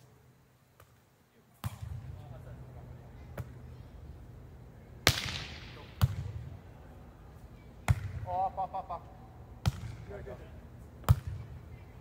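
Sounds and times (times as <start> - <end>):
volleyball smack: 5.0 - 6.3, 7.9 - 8.2, 11.0 - 11.4.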